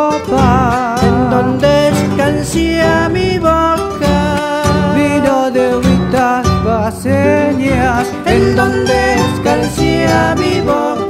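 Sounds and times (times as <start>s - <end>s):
folk music on acoustic guitars: 0.0s - 11.0s.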